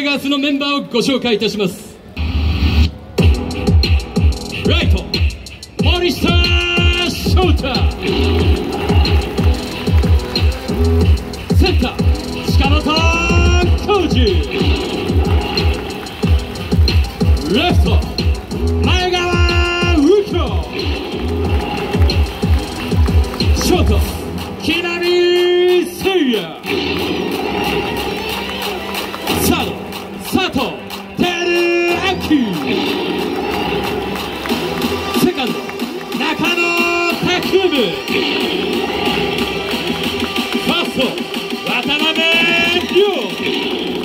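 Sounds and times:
electronic music over loudspeakers: 0.0 - 44.0
announcer over loudspeakers: 5.8 - 8.0, 11.5 - 14.6, 18.8 - 20.7, 29.3 - 32.6, 40.6 - 43.4
crowd cheering and shouting: 5.8 - 44.0.

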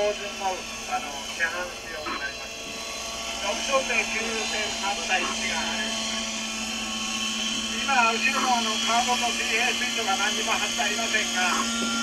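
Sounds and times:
model helicopter engine drone: 0.0 - 12.0
voices talking: 0.0 - 12.0.

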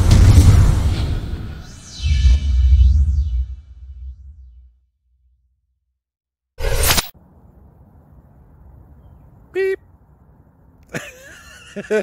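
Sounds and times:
whoosh: 0.0 - 4.9.

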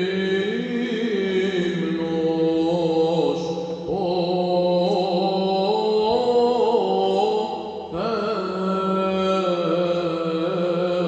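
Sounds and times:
man chanting melismatic melody: 0.0 - 11.0.

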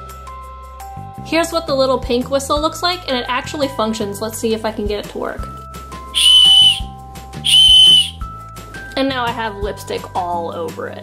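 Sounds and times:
shrill toy whistle blast: 6.2 - 8.2.

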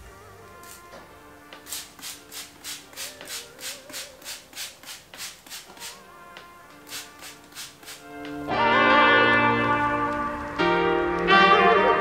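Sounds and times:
background music: 0.0 - 12.0
spray bottle spritzing: 1.6 - 6.0, 6.8 - 8.1.

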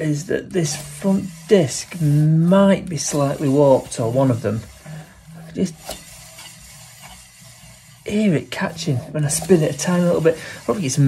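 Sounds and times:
wheel spinning: 0.0 - 11.0.

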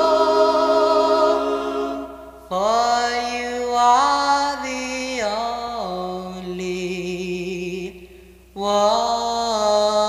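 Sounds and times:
vocal group singing harmony: 0.0 - 3.5.

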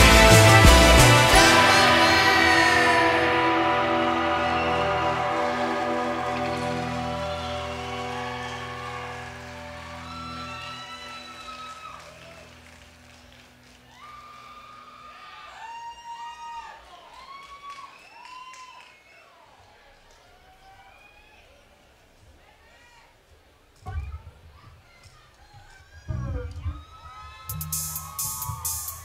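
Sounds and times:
rock band closing chord: 0.0 - 12.4, 27.5 - 29.0.

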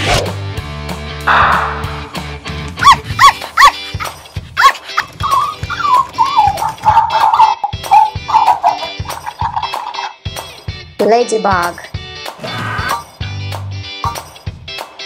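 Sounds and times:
upbeat background music: 0.0 - 15.0
puppy whining: 2.8 - 9.4
puppy yips: 2.8 - 9.7.

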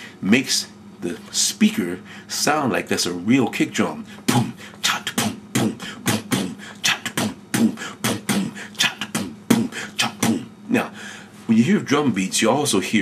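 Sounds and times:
vocal beatbox: 4.1 - 11.0.

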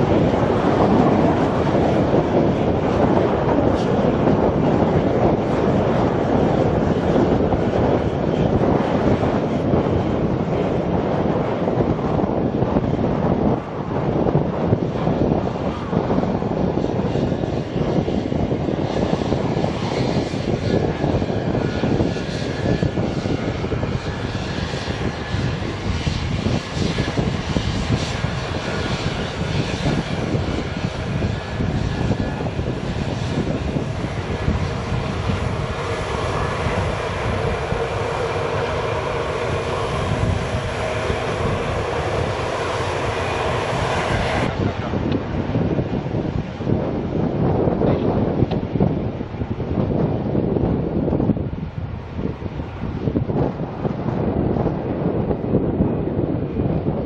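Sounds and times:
jet engines rumbling: 0.0 - 57.0
multi-tone engine whine: 0.0 - 57.0.

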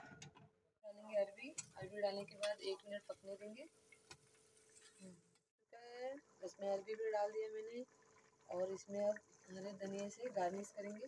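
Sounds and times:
woman speaking: 0.9 - 3.7.

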